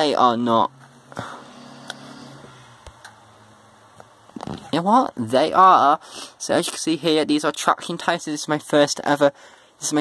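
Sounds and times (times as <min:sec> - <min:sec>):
faint low hum: 0:00.0 - 0:09.9.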